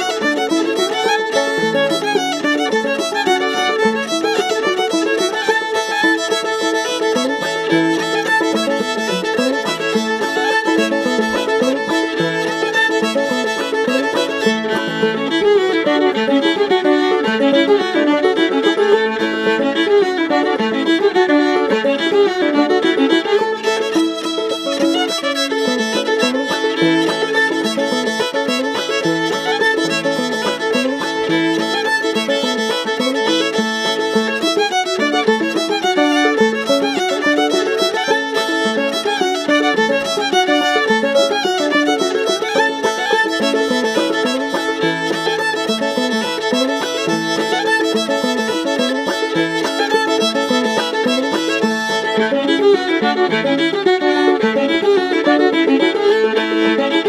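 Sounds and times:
banjo: 0:00.0 - 0:57.0
fiddle: 0:00.0 - 0:57.0.

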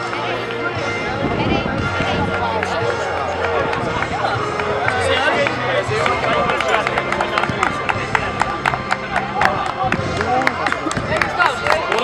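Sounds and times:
music playing: 0:00.0 - 0:12.0
people talking and calling out: 0:00.0 - 0:12.0
sharp claps: 0:02.3 - 0:12.0.

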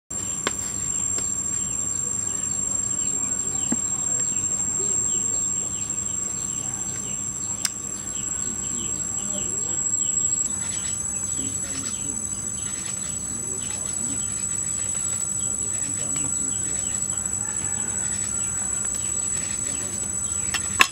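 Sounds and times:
insects droning in chorus: 0:00.1 - 0:20.9.

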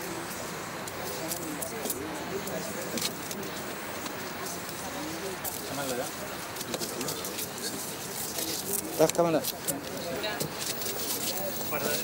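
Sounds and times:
faint murmured voices: 0:00.0 - 0:12.0
steady outdoor hiss: 0:00.0 - 0:12.0.

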